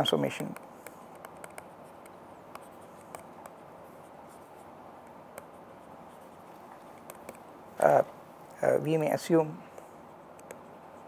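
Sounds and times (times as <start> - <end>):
steady low hiss: 0.0 - 11.0
stylus tapping on tablet screen: 0.4 - 3.6, 6.9 - 7.5.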